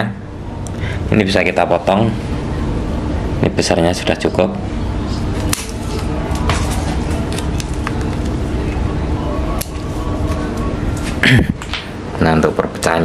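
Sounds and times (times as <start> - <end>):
low hum: 0.0 - 12.5.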